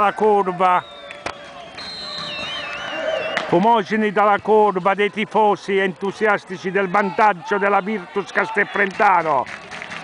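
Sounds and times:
distant crowd cheering and chanting: 0:00.0 - 0:10.0
high wavering whistle: 0:00.8 - 0:03.5.

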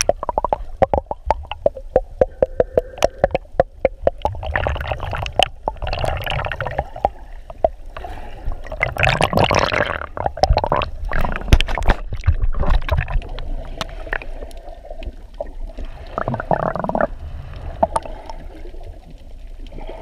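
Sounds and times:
water sloshing and splashing: 0:00.0 - 0:20.0.

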